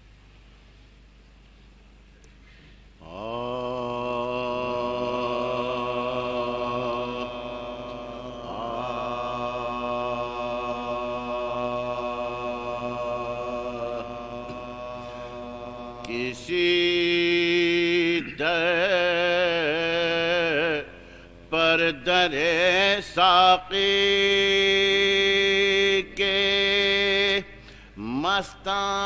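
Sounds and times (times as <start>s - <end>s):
man chanting unaccompanied: 3.0s - 29.0s.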